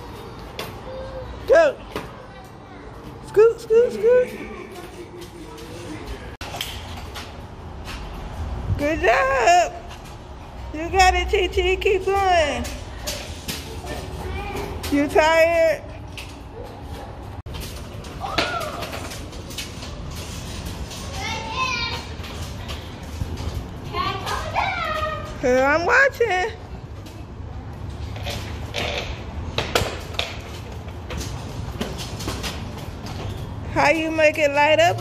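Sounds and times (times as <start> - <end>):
scooter wheels rolling on concrete: 0.0 - 35.0.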